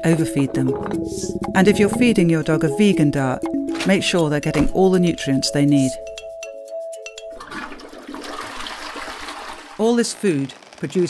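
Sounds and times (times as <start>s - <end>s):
toilet flush water rushing: 7.4s - 9.8s.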